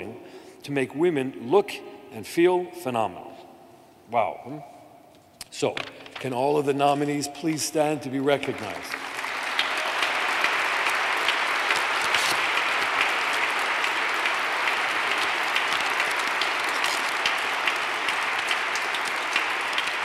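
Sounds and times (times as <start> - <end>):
audience applauding: 8.2 - 20.0.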